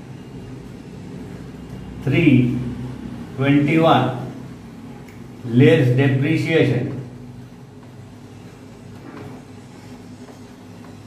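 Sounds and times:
person speaking: 0:05.4 - 0:07.4.

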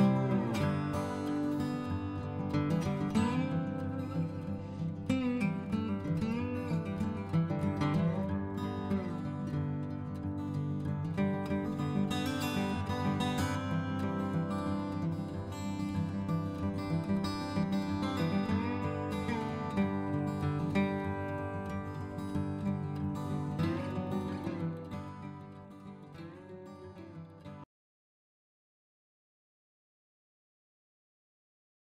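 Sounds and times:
acoustic guitar music: 0:00.0 - 0:27.6.

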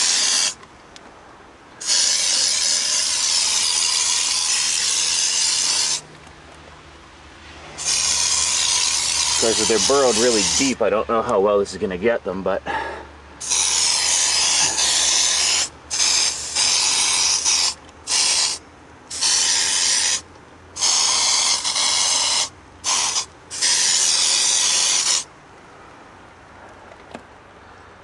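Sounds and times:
aerosol can spraying: 0:00.0 - 0:00.6, 0:01.8 - 0:06.0, 0:07.8 - 0:10.8, 0:13.4 - 0:20.2, 0:20.8 - 0:25.3.

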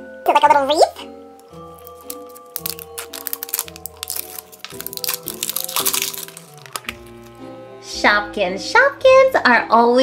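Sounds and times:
background music sustained notes: 0:00.0 - 0:10.0
foil wrapper crinkling: 0:01.4 - 0:07.4.

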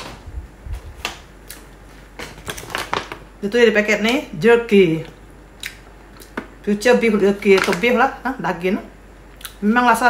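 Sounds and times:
paper snack packet crinkling: 0:02.4 - 0:03.2.

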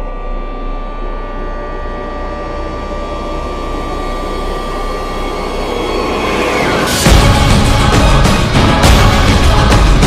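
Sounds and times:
jet-like rushing riser: 0:03.9 - 0:08.8.

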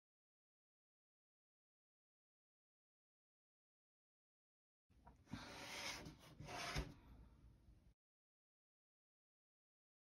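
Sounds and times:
faint rubbing and scraping: 0:05.2 - 0:07.2.

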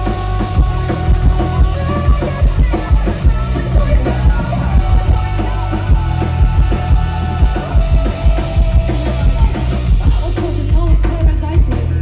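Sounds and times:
drum beats: 0:00.0 - 0:12.0
live rock music: 0:00.0 - 0:12.0
woman singing: 0:00.0 - 0:12.0.

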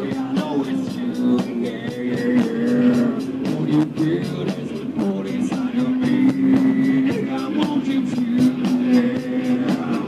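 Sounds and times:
bass guitar: 0:00.0 - 0:10.0
steady drum beat: 0:00.0 - 0:10.0.

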